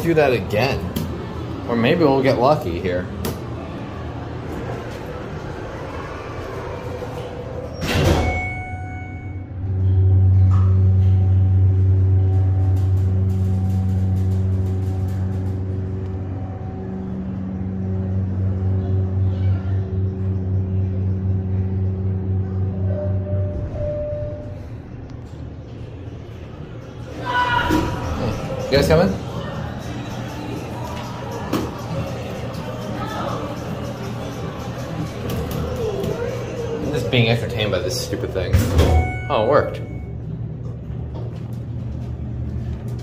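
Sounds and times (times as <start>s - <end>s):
elevator doors closing with a knock: 6.9s - 16.4s, 38.5s - 39.8s.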